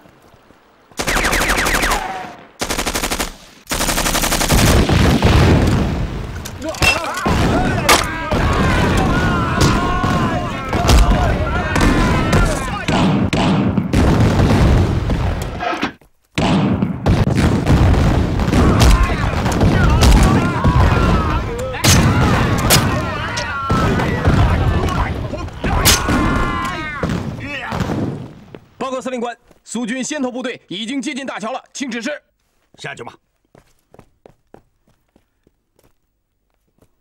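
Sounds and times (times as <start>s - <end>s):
gunfire: 1.0s - 6.0s, 7.2s - 15.6s, 16.4s - 28.2s
explosions: 4.5s - 6.4s, 7.2s - 15.7s, 16.4s - 28.5s
men shouting: 6.6s - 13.1s, 18.6s - 27.1s.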